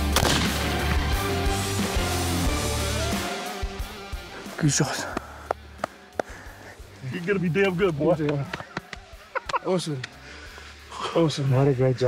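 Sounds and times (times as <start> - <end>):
background music: 0.0 - 12.0
rifle shot with echo: 0.1 - 0.8.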